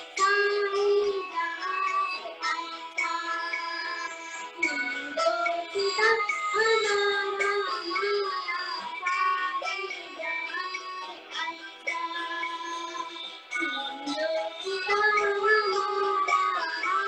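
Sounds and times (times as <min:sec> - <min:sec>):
girl singing: 0:00.0 - 0:17.0
instrumental backing music: 0:00.0 - 0:17.0.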